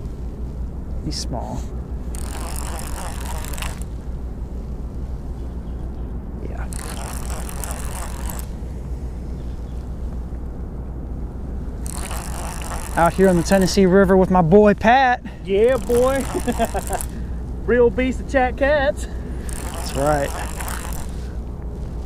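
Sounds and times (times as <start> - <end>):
steady low rumble: 0.0 - 22.0
fishing reel whirring and clicking: 2.0 - 4.0, 6.6 - 8.6, 11.8 - 14.9, 15.5 - 17.3, 19.1 - 21.4.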